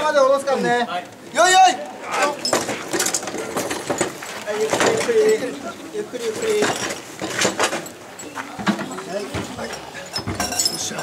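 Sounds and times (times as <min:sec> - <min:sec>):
metal fittings and bells jingling: 0:06.3 - 0:11.0.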